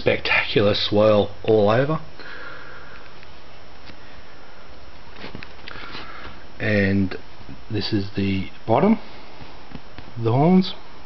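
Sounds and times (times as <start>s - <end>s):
background hiss: 0.0s - 11.0s
nasal breath: 5.6s - 6.4s.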